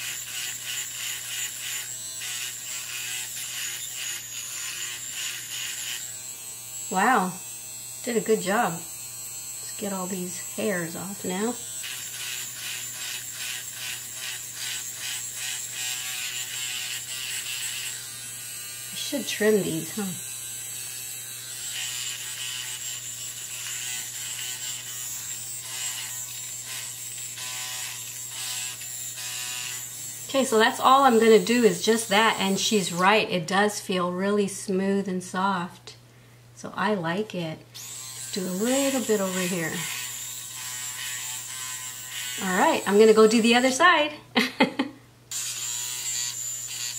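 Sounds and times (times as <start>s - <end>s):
trimmer buzzing: 0.0s - 33.1s, 37.8s - 43.8s, 44.7s - 46.9s.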